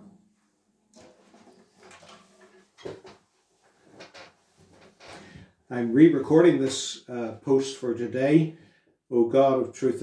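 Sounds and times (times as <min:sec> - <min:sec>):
guitar handling knocks and rustles: 0:01.0 - 0:05.3.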